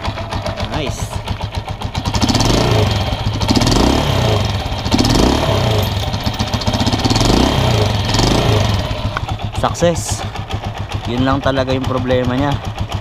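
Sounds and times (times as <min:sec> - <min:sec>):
motorcycle engine revving: 0:00.0 - 0:13.0.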